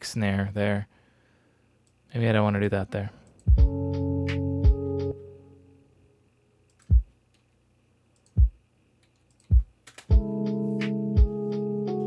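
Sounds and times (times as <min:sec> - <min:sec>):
hi-hat ticks: 0:03.2 - 0:05.1, 0:06.7 - 0:07.1, 0:08.2 - 0:12.0
lo-fi hip-hop beat: 0:03.4 - 0:05.4, 0:06.8 - 0:07.1, 0:09.5 - 0:12.0
held keyboard chord: 0:03.4 - 0:05.8, 0:10.1 - 0:12.0
kick drum hits: 0:03.5 - 0:03.8, 0:09.5 - 0:10.3.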